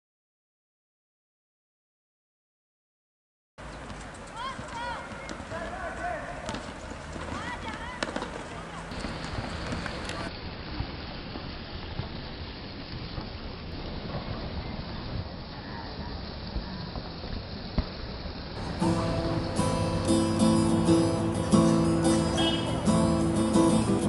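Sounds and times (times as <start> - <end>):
steady background noise: 3.6 - 24.0
acoustic guitar plucked and strummed: 18.6 - 24.0.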